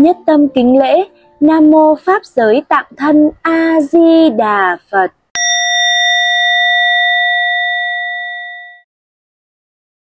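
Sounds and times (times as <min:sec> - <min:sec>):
struck bowl bell ringing: 0:05.4 - 0:08.8.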